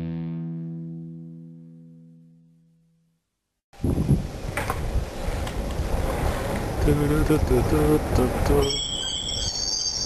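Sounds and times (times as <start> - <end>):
road rumble: 3.8 - 9.3
wind rushing over microphone: 3.8 - 9.5
squeaky bicycle squeaking: 8.6 - 10.0.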